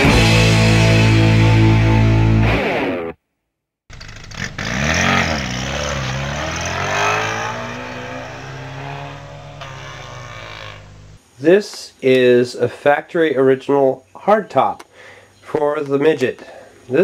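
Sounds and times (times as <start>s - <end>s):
car engine revving: 3.9s - 11.2s.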